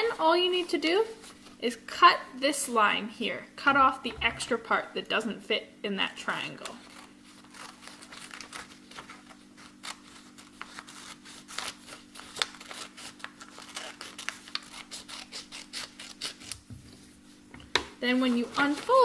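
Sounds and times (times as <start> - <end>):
low steady hum: 0.0 - 19.0
scissors snipping paper: 6.6 - 16.7, 18.1 - 19.0.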